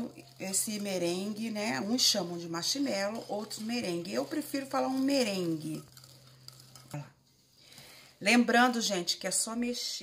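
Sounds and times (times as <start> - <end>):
stirring meringue in glass bowl: 0.0 - 7.6.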